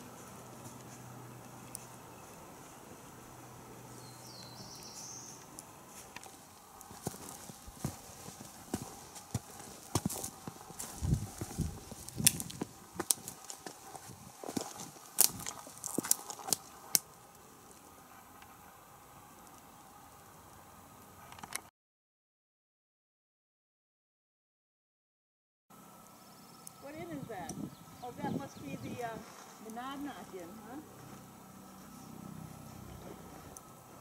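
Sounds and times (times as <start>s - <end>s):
footsteps on rocky trail: 4.0s - 17.1s.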